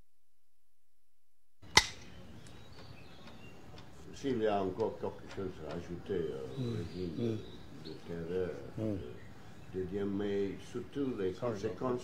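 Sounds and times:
faint background noise: 1.6s - 12.0s
sharp click: 1.7s - 3.9s.

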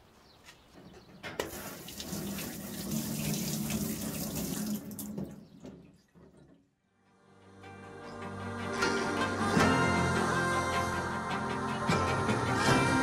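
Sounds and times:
tap water running into sink: 1.4s - 6.7s.

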